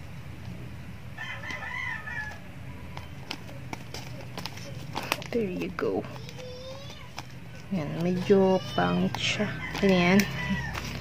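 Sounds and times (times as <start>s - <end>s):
rooster crowing: 1.2s - 2.5s, 8.0s - 11.0s
handling clicks and taps: 2.3s - 11.0s.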